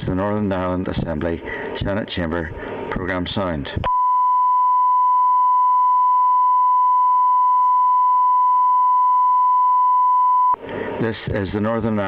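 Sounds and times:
recorded voice announcement: 0.0 - 3.9, 11.0 - 12.0.

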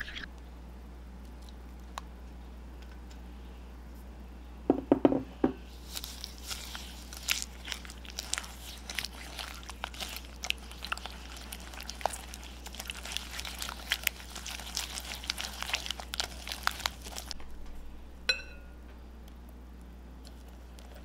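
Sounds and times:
wet batter mixing: 5.7 - 17.4, 20.2 - 21.0.

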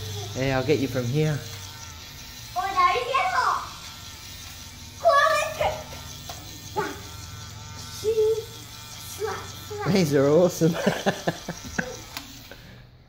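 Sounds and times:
bubble gun motor buzzing: 0.0 - 13.0
child squealing laughs: 10.7 - 12.2.

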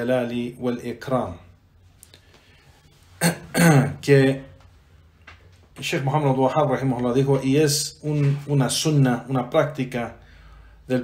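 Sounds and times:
man clearing his throat: 3.2 - 4.0.

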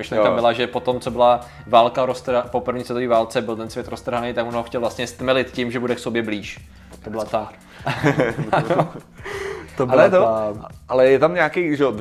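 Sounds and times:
men laughing: 7.7 - 10.2
gasping intake of air: 9.1 - 9.8.

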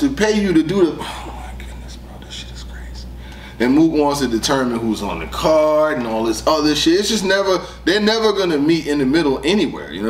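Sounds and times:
steady low hum: 0.0 - 10.0
faint breathing: 3.0 - 3.6, 7.6 - 7.9.

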